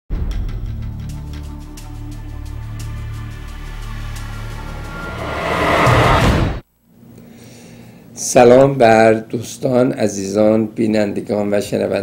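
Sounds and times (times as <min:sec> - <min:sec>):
low-toned intro music: 0:00.3 - 0:06.6
noisy whoosh: 0:02.8 - 0:06.6.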